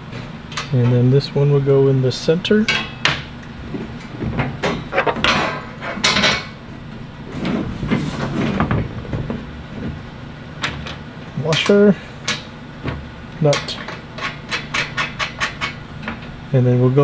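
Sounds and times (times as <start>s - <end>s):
bolts clinking against steel panel: 13.5s - 16.3s.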